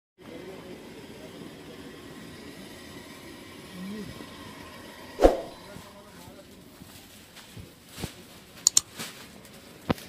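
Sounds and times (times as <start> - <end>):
faint distant voices: 0.2 - 8.6
indoor market hubbub: 0.2 - 10.0.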